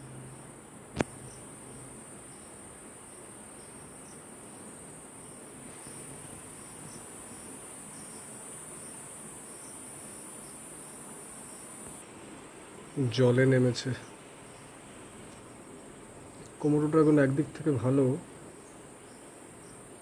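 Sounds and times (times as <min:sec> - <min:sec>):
insects chorus: 0:00.0 - 0:20.0.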